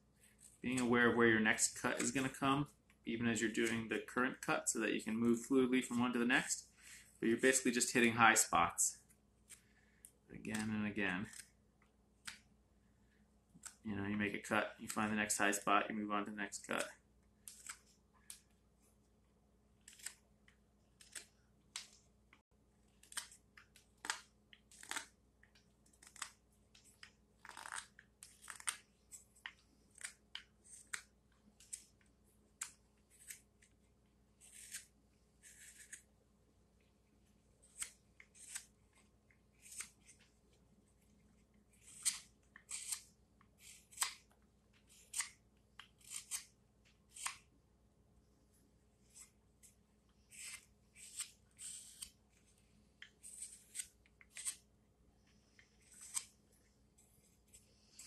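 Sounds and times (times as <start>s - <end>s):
knife carving wood: 10.5s - 11.6s, 16.8s - 18.5s, 19.8s - 22.0s, 22.8s - 32.0s, 32.6s - 33.8s, 34.4s - 36.1s, 37.6s - 40.3s, 41.3s - 47.5s, 49.0s - 58.0s.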